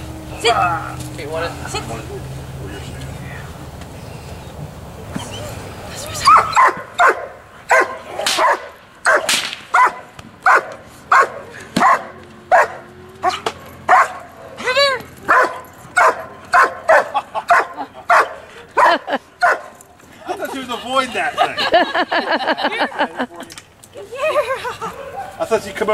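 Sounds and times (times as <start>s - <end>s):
dog yelp: 6.1s - 19.7s
dog barking: 6.2s - 14.6s, 15.3s - 19.7s, 25.0s - 25.4s.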